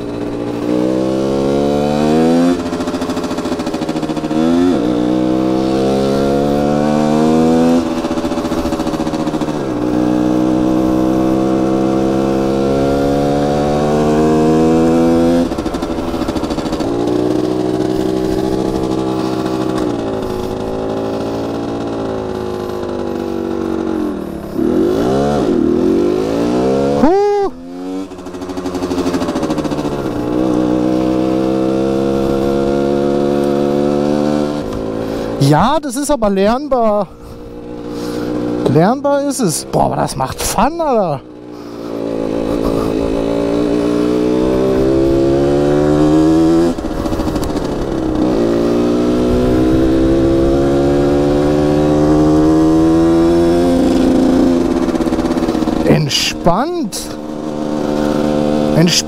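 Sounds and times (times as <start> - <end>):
two-stroke motorcycle engine: 0.0 - 59.0.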